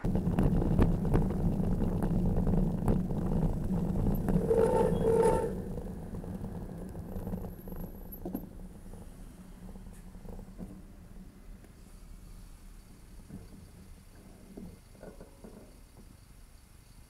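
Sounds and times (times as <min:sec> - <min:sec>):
traffic rumble: 0:00.0 - 0:16.6.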